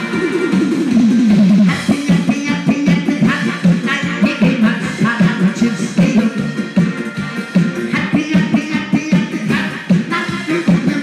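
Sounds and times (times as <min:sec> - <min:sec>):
amplified backing music: 0:00.0 - 0:11.0
man singing through microphone: 0:01.7 - 0:06.5, 0:07.9 - 0:11.0.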